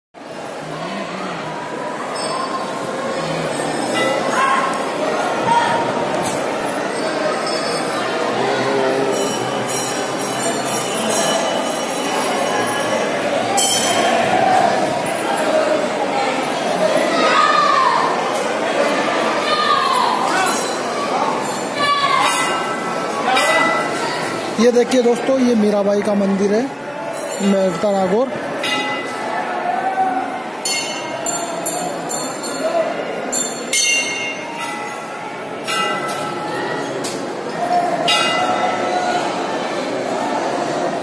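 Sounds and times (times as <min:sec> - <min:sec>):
crowd din in hall: 0:00.2 - 0:41.0
brass temple bell ringing: 0:07.4 - 0:14.1, 0:28.6 - 0:29.3, 0:30.6 - 0:32.6, 0:33.5 - 0:36.6, 0:38.1 - 0:39.0
brass bell ringing: 0:09.1 - 0:14.1.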